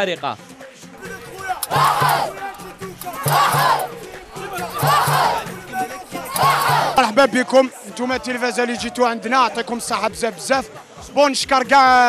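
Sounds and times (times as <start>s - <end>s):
frame drum beating: 1.0s - 7.1s
crowd shouting a chant: 1.0s - 7.3s.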